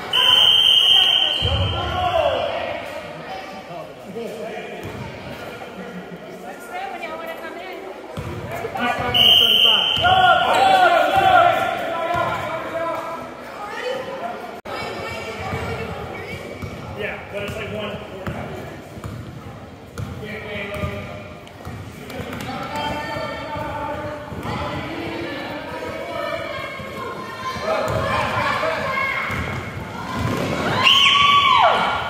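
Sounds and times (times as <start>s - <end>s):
echoing shouts and voices: 0.0s - 32.0s.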